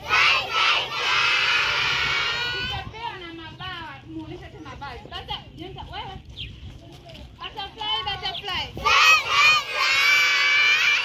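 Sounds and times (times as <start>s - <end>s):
children shouting in unison: 0.0s - 2.8s, 8.8s - 11.0s.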